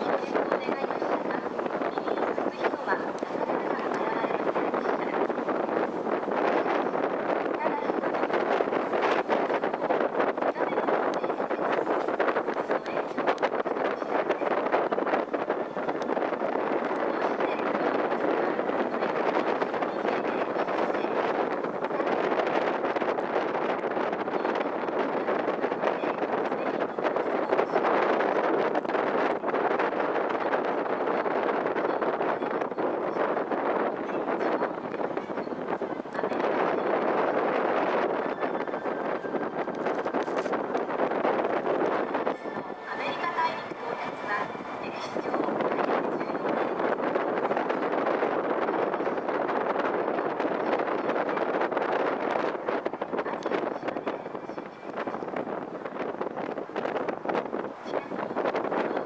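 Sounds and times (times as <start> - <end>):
boat running: 0.0 - 59.0
water noise: 0.0 - 59.0
wind rushing over microphone: 0.0 - 59.0.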